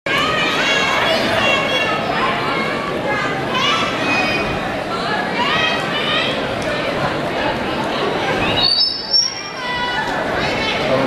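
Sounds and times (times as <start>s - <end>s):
crowd of young people chattering: 0.1s - 11.0s.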